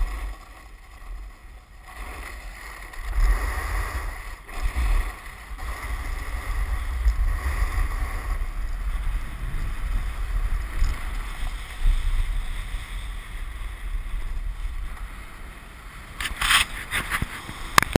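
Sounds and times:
wind buffeting microphone: 0:00.0 - 0:15.4.

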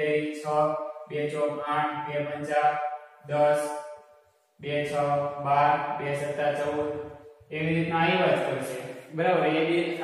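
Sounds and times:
man chanting: 0:04.6 - 0:10.0.

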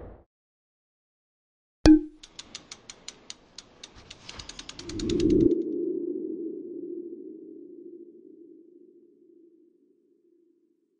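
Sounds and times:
crisp ticks: 0:02.2 - 0:05.6.

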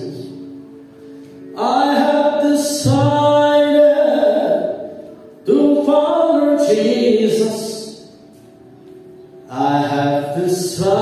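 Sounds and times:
man singing long notes: 0:01.5 - 0:08.1, 0:09.4 - 0:11.0.

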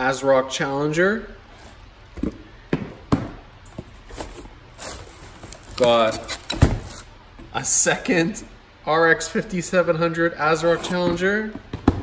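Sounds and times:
packaging rustle: 0:03.8 - 0:07.1.

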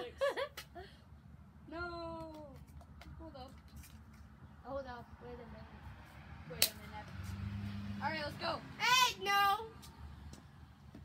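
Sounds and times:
child's high-pitched wordless sounds: 0:08.0 - 0:09.8.

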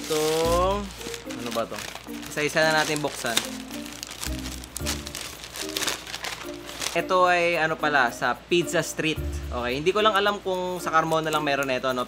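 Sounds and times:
paper bag rustling and crinkling: 0:00.0 - 0:07.4
background music: 0:00.0 - 0:12.0.

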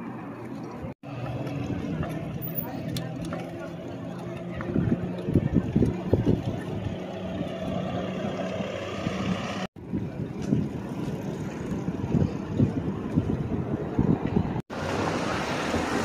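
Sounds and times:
road traffic hum: 0:00.0 - 0:16.0
wind buffeting microphone: 0:04.2 - 0:16.0.

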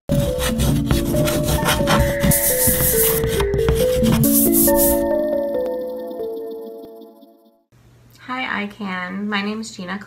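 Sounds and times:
chalk scraping on concrete: 0:00.1 - 0:05.1
light music: 0:00.1 - 0:07.7.

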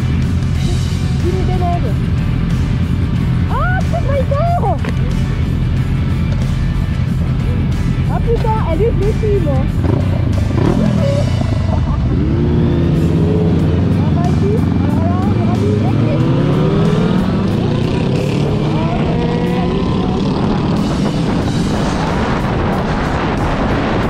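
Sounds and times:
motorcycles accelerating: 0:00.0 - 0:24.0
wind noise on microphone: 0:17.3 - 0:24.0.

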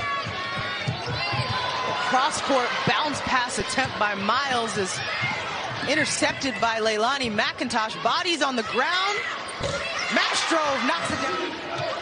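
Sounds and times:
sneakers squeaking: 0:00.0 - 0:02.2
arena crowd noise: 0:00.0 - 0:12.0.

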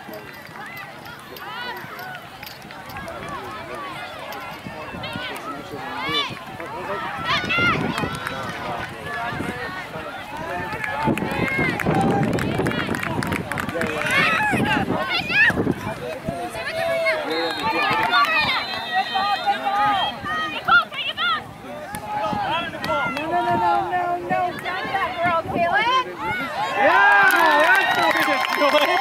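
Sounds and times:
crowd shouting: 0:00.6 - 0:12.9, 0:13.8 - 0:29.0.

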